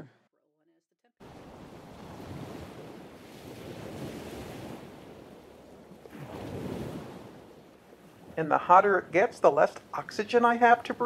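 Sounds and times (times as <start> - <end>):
ocean surf: 1.2 - 11.0.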